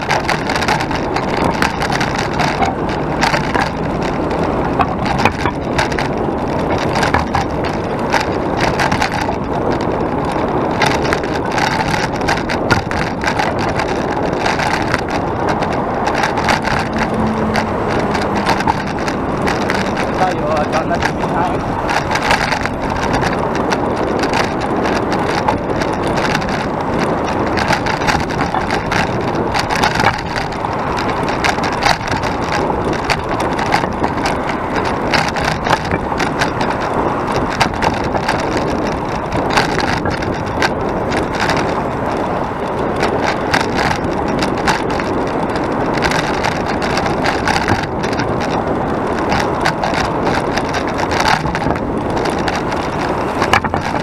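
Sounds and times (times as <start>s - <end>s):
bike knocks and rattles: 0.0s - 54.0s
passing road traffic: 0.0s - 54.0s
wind noise on microphone: 0.0s - 54.0s.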